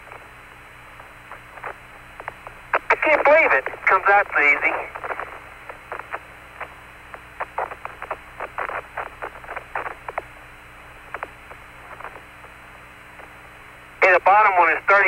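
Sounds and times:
narrow-band radio hiss: 0:00.0 - 0:15.0
short irregular radio clicks: 0:00.0 - 0:15.0.

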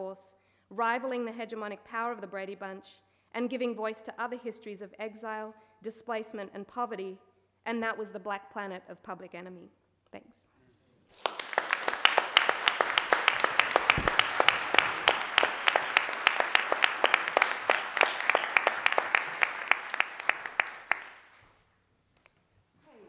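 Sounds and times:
audience applauding: 0:11.1 - 0:21.4
sharp close claps: 0:11.1 - 0:21.4.

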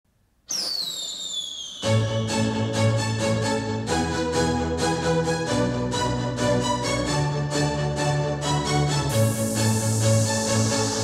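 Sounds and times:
whistle-like tone sliding downward: 0:00.5 - 0:03.2
pop song beat and bass: 0:08.6 - 0:11.0.

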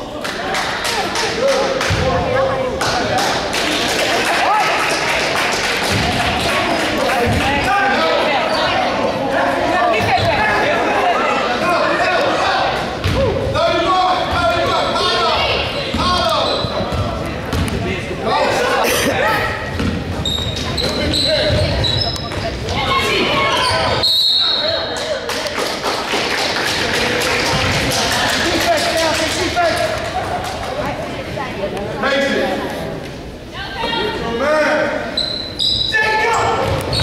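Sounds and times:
basketball bouncing on wooden floor: 0:19.8 - 0:22.5.

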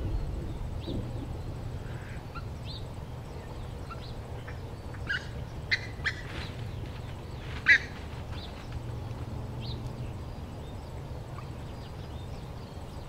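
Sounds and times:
low rumble: 0:00.0 - 0:12.5
birds chirping and calling: 0:00.0 - 0:13.0.

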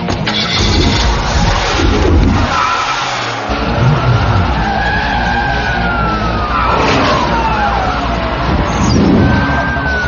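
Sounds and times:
tyres squealing in a skid: 0:00.3 - 0:10.0
truck engine running: 0:00.6 - 0:10.0.

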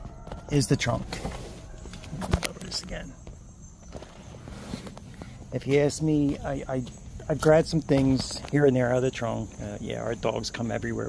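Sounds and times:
person climbing out: 0:00.0 - 0:08.8
rustling of handling: 0:03.8 - 0:08.8.

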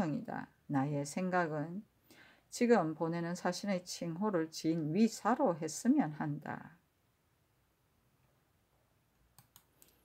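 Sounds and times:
faint clicks: 0:09.2 - 0:10.0.

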